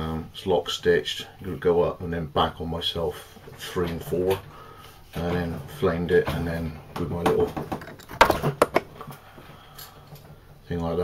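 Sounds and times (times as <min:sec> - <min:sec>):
sharp clicks and knocks: 0:07.0 - 0:09.0.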